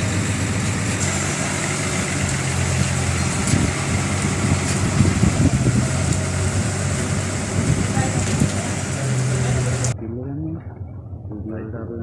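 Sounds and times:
bus engine idling: 0.0 - 11.7.

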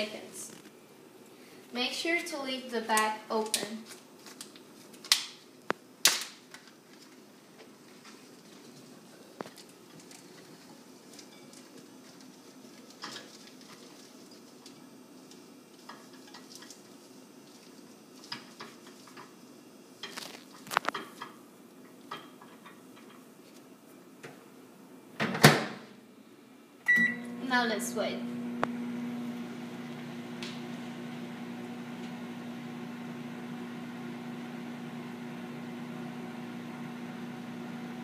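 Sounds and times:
faint room hum: 0.0 - 33.2.

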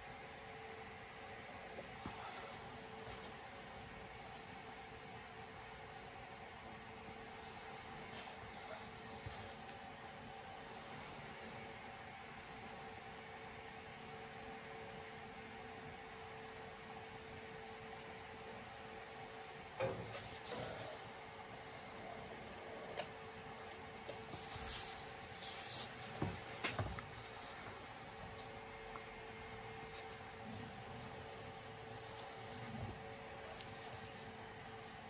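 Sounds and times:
faint room hum: 0.0 - 35.0.

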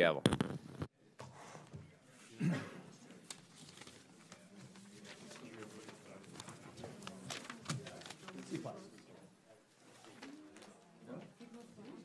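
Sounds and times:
faint murmur of people talking: 0.9 - 12.0.

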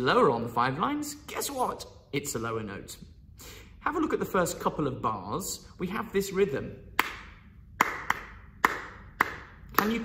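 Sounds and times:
hands clapping a rhythm: 6.9 - 10.0.

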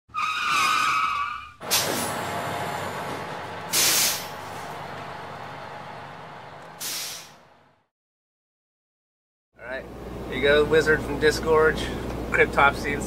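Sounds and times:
tyre squeal: 0.1 - 1.6
air brake hiss: 1.7 - 2.1, 3.7 - 4.4, 6.8 - 7.4.

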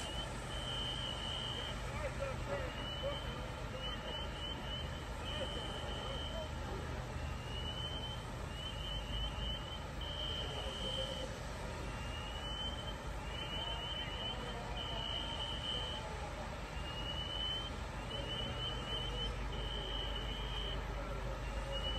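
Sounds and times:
fire truck engines rumbling: 0.0 - 21.9.

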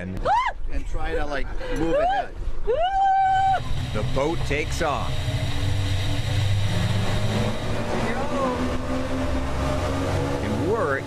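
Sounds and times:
wind: 0.0 - 11.0
motorboat engine rumbling: 3.0 - 11.0
water rushing: 3.3 - 11.0.

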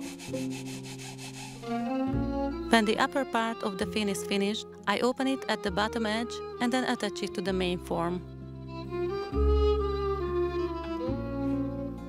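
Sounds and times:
hands rubbing wet wool through netting: 0.0 - 1.7
soft background music: 0.0 - 12.0.

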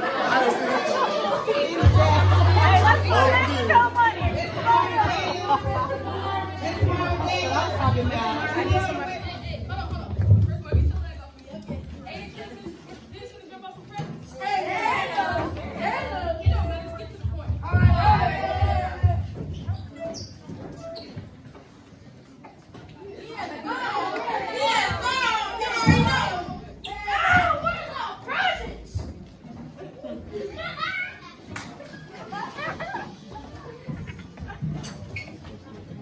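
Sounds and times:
chatter of voices in a hall: 0.0 - 36.0
children calling out: 23.4 - 28.9.

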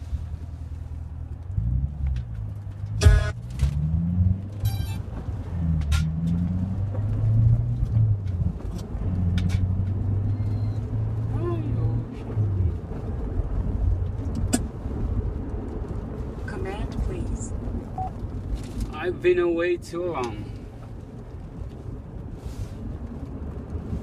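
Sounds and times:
car engine from inside cabin: 0.0 - 24.0.

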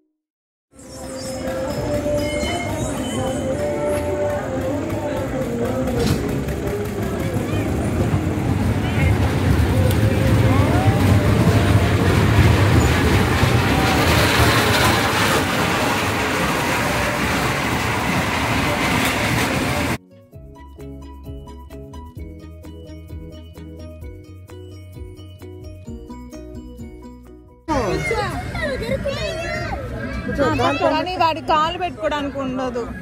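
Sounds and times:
kiddie train rumbling on metal track: 0.8 - 20.0, 27.7 - 33.0.

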